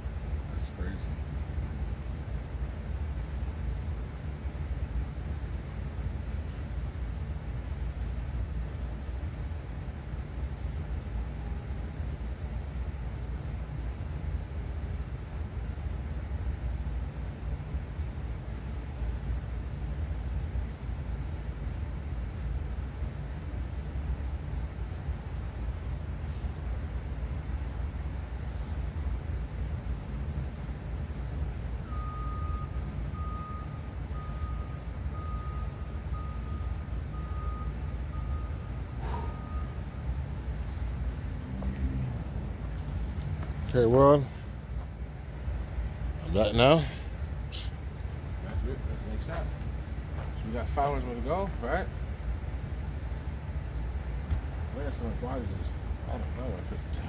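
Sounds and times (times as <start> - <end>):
low outdoor rumble: 0.0 - 57.0.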